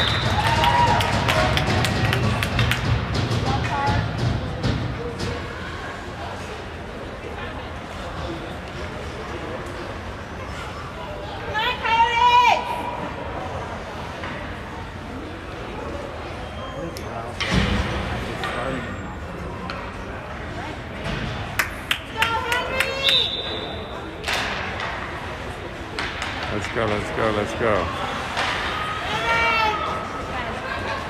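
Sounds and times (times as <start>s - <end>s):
voices echoing in arena: 0.0s - 31.0s
hockey stick clacks: 0.1s - 3.8s, 24.2s - 25.3s, 25.9s - 27.4s
thud: 17.4s - 18.2s.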